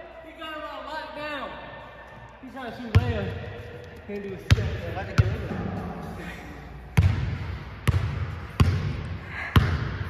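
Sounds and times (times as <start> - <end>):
basketball bouncing on hardwood floor: 4.5 - 5.6, 7.0 - 10.0.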